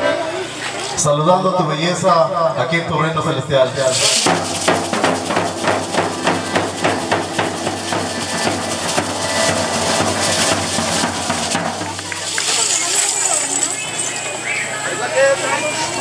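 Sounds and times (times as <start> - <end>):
fast drum beating: 3.8 - 14.1.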